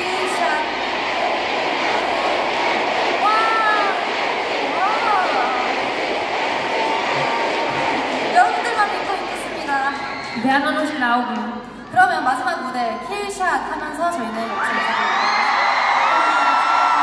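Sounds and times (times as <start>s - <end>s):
arena crowd cheering and screaming: 0.0s - 17.0s.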